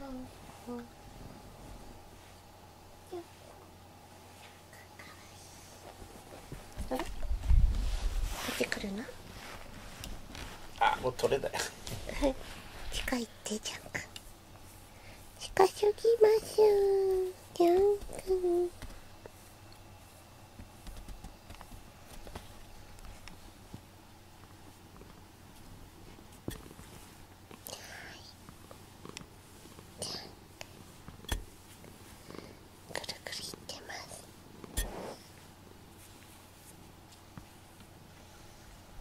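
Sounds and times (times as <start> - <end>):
soft whispered speech: 4.4 - 5.8, 15.2 - 18.8, 27.6 - 28.4, 32.8 - 34.4
faint clicks and handling noise: 17.0 - 27.7, 28.4 - 29.9.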